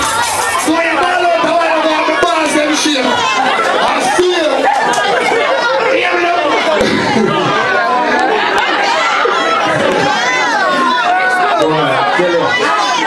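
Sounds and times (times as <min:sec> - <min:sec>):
loud crowd chatter: 0:00.0 - 0:13.0.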